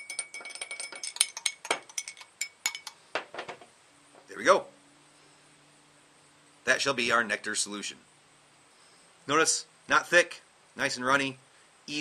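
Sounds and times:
metal spoon clinking in glass: 0:00.0 - 0:03.0.

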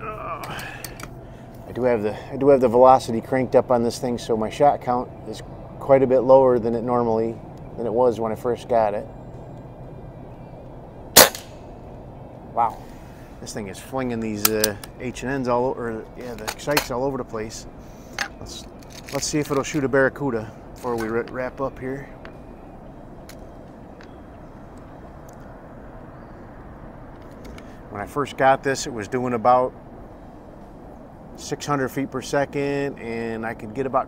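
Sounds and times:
low outdoor rumble: 0:00.0 - 0:34.0
air rifle shot: 0:11.2 - 0:11.6.

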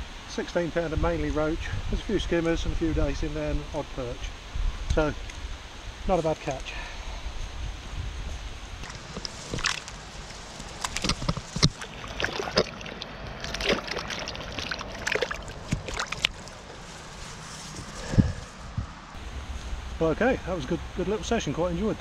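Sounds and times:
water sloshing and dripping: 0:08.8 - 0:16.8
fish splashing in water: 0:09.5 - 0:16.8.

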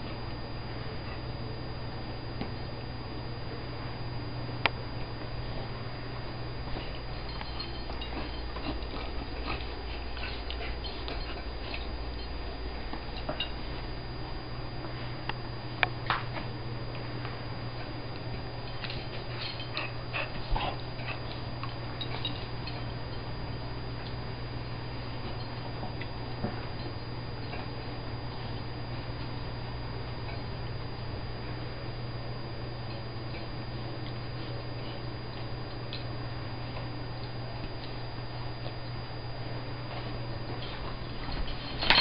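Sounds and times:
dogs play-fighting: 0:00.0 - 0:42.0
steady low hum: 0:00.0 - 0:42.0.

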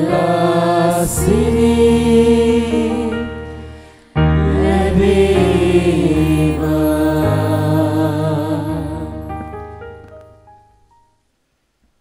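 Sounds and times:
hymn singing: 0:00.0 - 0:10.0
held accompaniment chords: 0:00.0 - 0:11.1.

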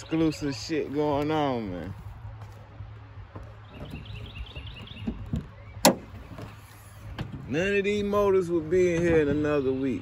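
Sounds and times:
bird chirping: 0:00.0 - 0:01.1, 0:03.4 - 0:07.2.

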